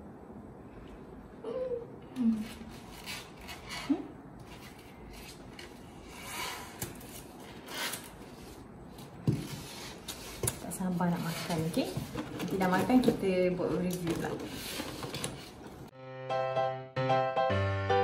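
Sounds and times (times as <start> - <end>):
woman talking: 10.6 - 14.6.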